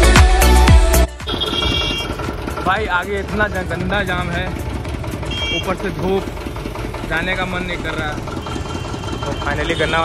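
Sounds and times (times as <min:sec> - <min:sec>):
street traffic: 0:01.1 - 0:10.0
motorcycle engine idling: 0:01.2 - 0:10.0.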